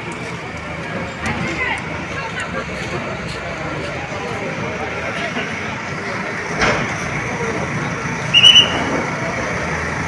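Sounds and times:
crowd chatter: 0:00.0 - 0:10.0
diesel engine running: 0:00.0 - 0:10.0.

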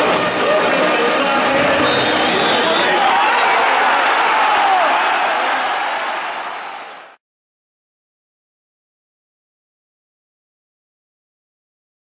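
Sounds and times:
stadium crowd cheering: 0:00.0 - 0:07.2.

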